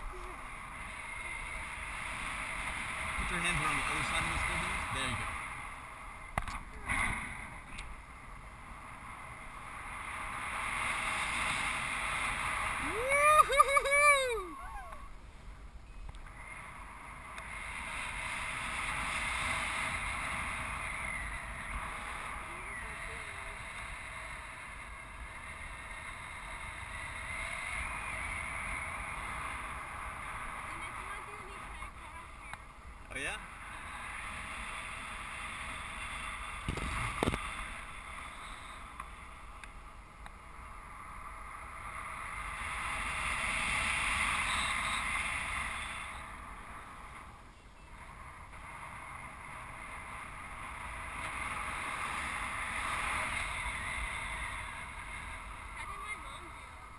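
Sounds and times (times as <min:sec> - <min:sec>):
person crying out: 0:12.8 - 0:15.0.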